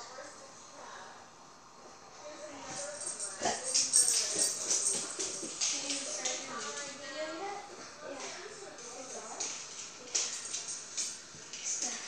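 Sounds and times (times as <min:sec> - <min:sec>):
metallic jingling: 0:02.7 - 0:06.3.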